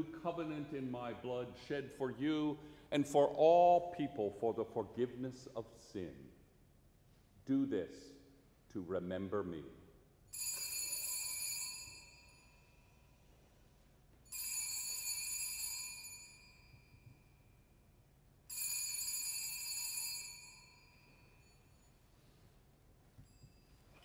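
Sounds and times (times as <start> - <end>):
small altar bell ringing: 10.3 - 13.3, 14.2 - 24.0.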